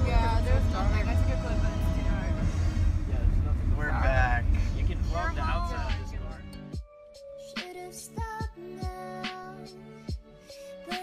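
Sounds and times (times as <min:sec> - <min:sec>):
van engine rumble: 0:00.0 - 0:06.5
road noise: 0:00.0 - 0:06.7.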